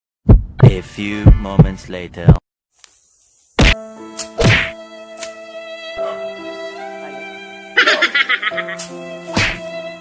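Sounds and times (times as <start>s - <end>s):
background music of held notes: 3.8s - 10.0s.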